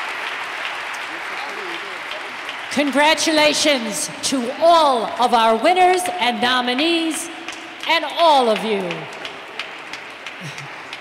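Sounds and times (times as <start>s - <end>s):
light applause from audience: 0.0s - 3.0s, 8.8s - 11.0s.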